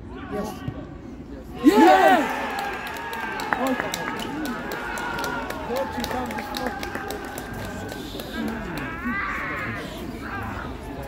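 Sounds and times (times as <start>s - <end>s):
players shouting: 1.6s - 10.6s.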